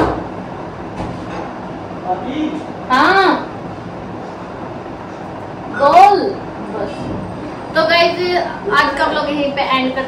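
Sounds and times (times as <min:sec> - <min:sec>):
fan humming: 0:00.0 - 0:10.0.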